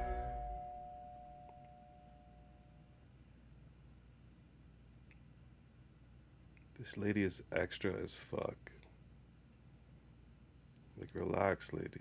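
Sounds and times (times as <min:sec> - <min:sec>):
faint held tone: 0:00.0 - 0:03.1.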